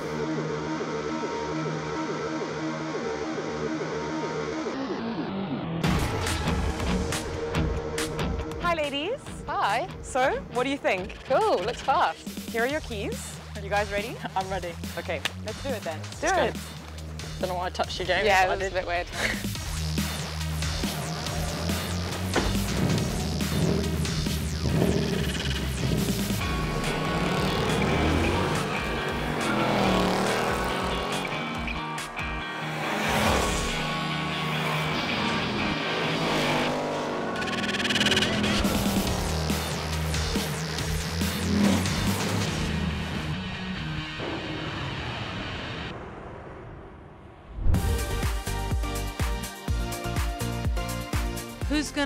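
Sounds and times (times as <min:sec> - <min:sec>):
background music with steady beat: 0:05.8 - 0:35.7, 0:47.8 - 0:52.0
car engines racing: 0:19.6 - 0:45.9.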